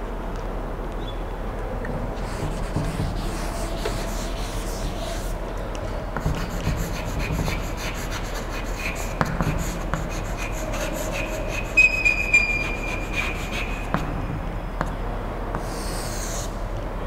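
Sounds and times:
chalk scratching on blackboard: 2.2 - 5.4, 6.2 - 14.1, 15.6 - 16.6
chalk squeak: 2.2 - 5.4, 6.2 - 14.2, 15.6 - 16.6.

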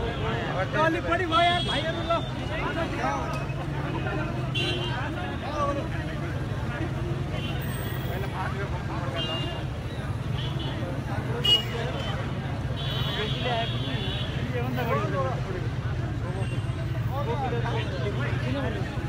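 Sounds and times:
crowd babble: 0.0 - 19.0.

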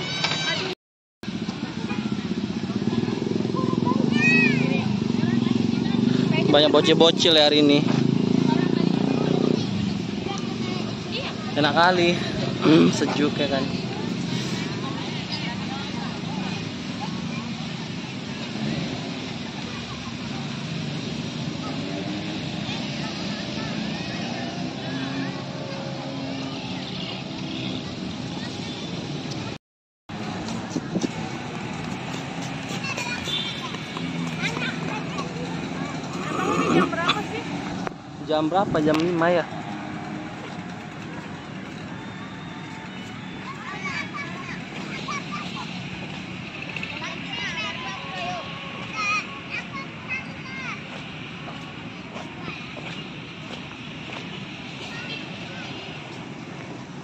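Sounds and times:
distant voices and chatter: 0.0 - 57.0
road traffic: 0.0 - 57.0.

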